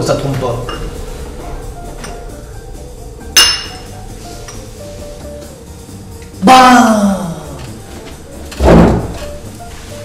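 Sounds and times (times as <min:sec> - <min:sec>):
cup clinking on saucer: 0:03.4 - 0:03.9.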